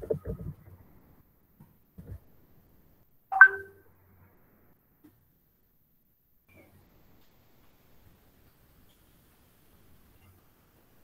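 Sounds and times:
electronic notification chime: 3.3 - 3.7.

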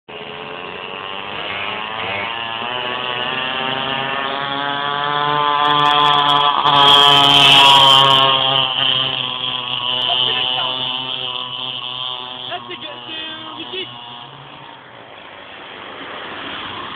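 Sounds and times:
small engine passing by: 0.1 - 16.9.

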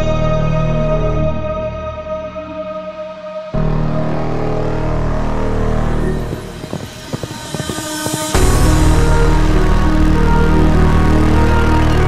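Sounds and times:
background music: 0.0 - 12.0
engine crackles: 5.3 - 12.0.

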